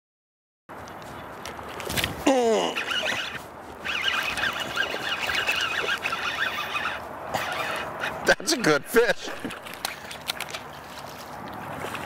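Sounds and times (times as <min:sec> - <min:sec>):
fishing reel buzzing: 0:02.5 - 0:08.3.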